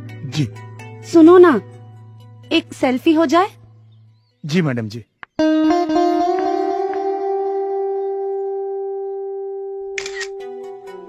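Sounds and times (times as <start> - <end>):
plucked-string music: 5.3 - 11.0
held background music note: 5.4 - 11.0
phone camera shutter click: 10.0 - 10.5.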